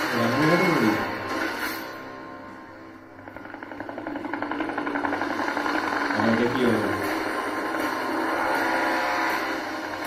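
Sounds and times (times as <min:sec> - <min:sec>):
low musical drone: 0:00.0 - 0:10.0
helicopter rotor chopping: 0:03.0 - 0:10.0.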